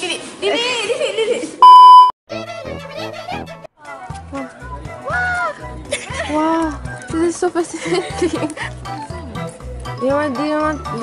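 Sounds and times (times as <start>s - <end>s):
loud electronic bleep: 1.6s - 2.1s.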